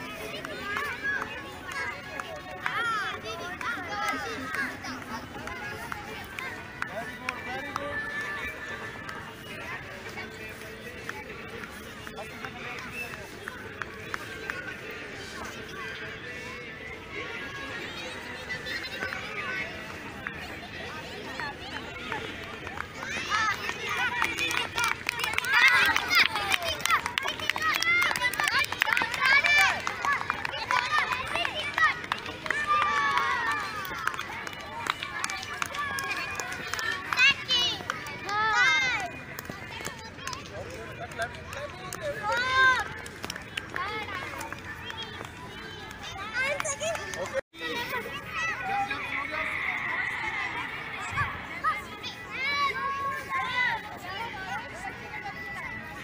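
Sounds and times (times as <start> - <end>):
children calling and chattering: 0.0 - 56.0.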